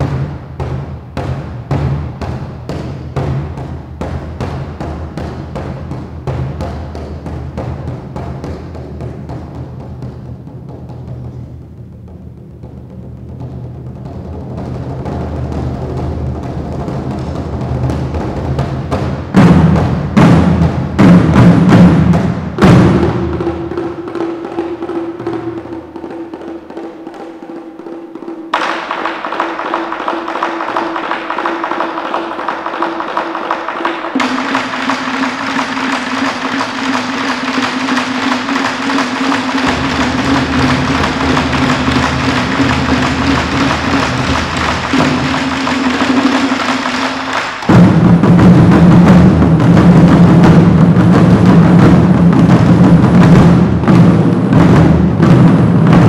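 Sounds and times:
drum ensemble playing: 0.0s - 12.1s, 12.7s - 56.0s.

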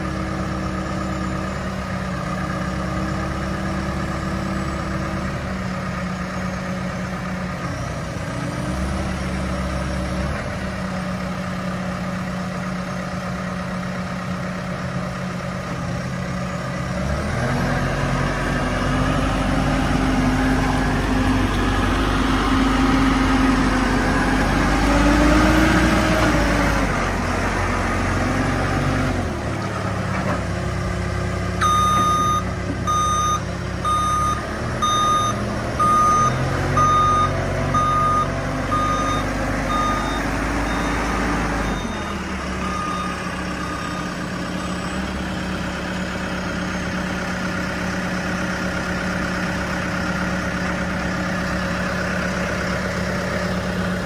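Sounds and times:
diesel engine running and revving: 0.0s - 54.0s
reversing alarm beeping: 31.6s - 44.9s.

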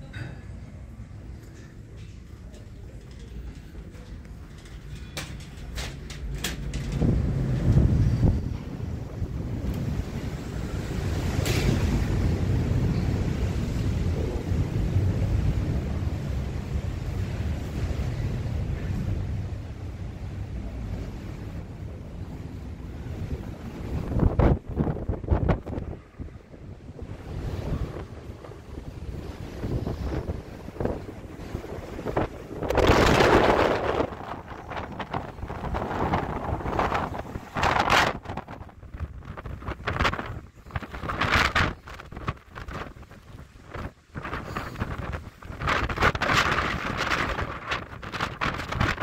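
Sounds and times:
wind buffeting microphone: 0.8s - 49.0s.

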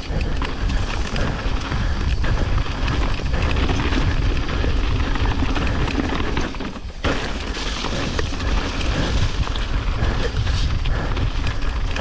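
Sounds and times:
bike rattling: 0.0s - 12.0s
tyres rolling over dirt and leaves: 0.0s - 12.0s
wind rumbling on microphone: 0.0s - 12.0s.

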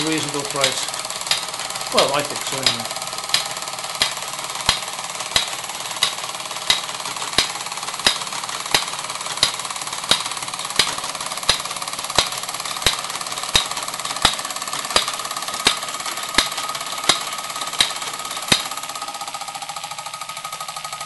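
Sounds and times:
sharp clicks: 0.0s - 18.8s
model steam engine rattling: 0.0s - 21.0s.

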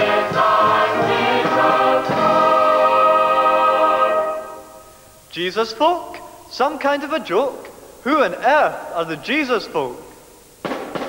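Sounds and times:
mixed choir singing: 0.0s - 4.8s.

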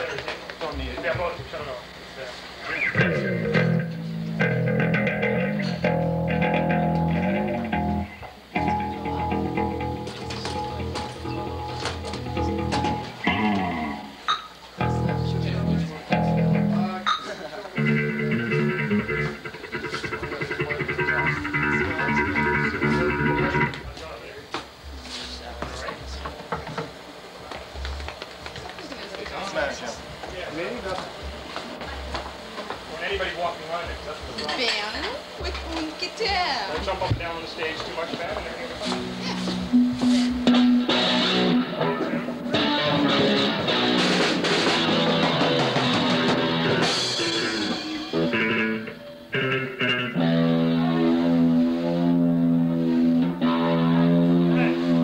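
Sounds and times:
live band music: 2.8s - 14.2s, 14.8s - 17.0s, 17.8s - 23.9s, 38.8s - 55.0s.

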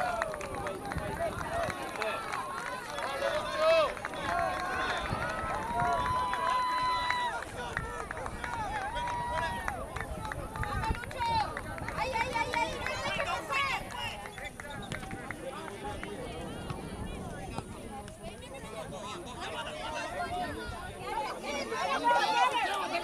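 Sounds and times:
people shouting on a field: 0.0s - 14.2s, 19.1s - 23.0s.

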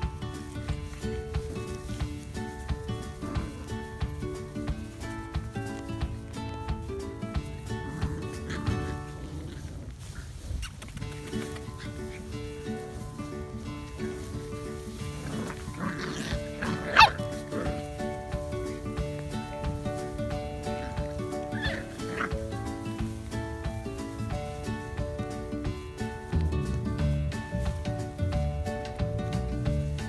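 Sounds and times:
background music: 0.0s - 10.1s, 10.9s - 30.0s
puppy yelping: 15.4s - 17.8s, 21.4s - 22.4s.

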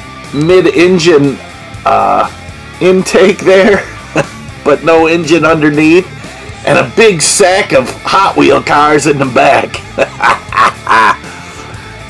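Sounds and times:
guitar music: 0.0s - 12.0s
man laughing: 3.1s - 4.5s, 9.7s - 11.5s.

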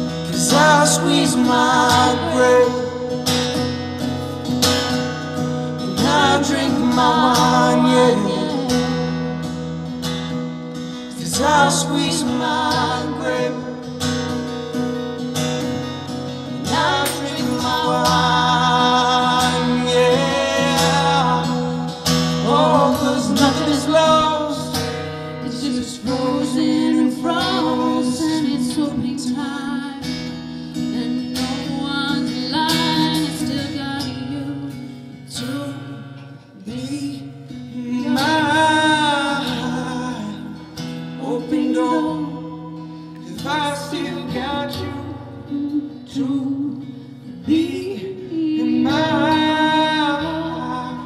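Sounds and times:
acoustic guitar: 0.0s - 51.0s
man and woman singing: 0.3s - 3.3s, 5.8s - 9.4s, 11.1s - 14.0s, 16.5s - 30.2s, 30.8s - 36.0s, 36.6s - 51.0s.

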